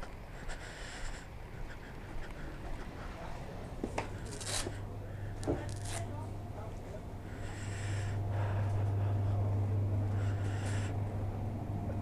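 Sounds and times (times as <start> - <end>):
refrigeration hum: 0.0 - 12.0.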